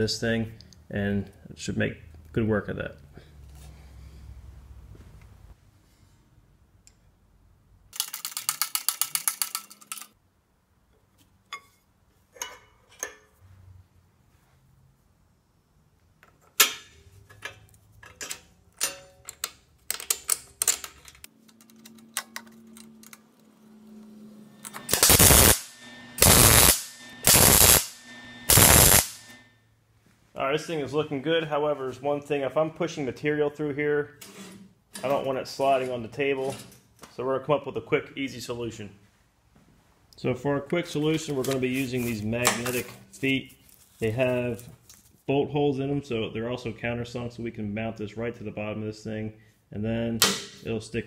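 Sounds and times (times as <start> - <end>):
fast ratcheting rattle: 8.0 - 10.1
metal parts clicking: 8.0 - 10.2, 16.4 - 23.4
welding arc crackle: 24.8 - 29.4.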